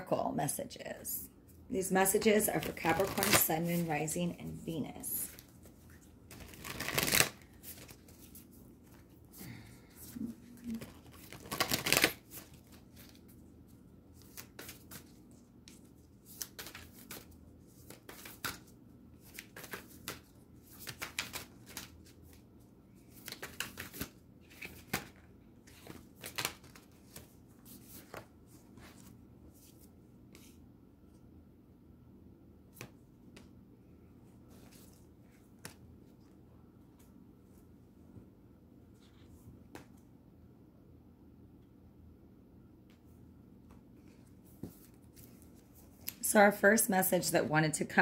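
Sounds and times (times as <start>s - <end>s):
cards being shuffled: 2.6s - 4.0s, 5.3s - 9.2s, 10.0s - 13.4s, 14.1s - 30.6s, 34.5s - 36.3s.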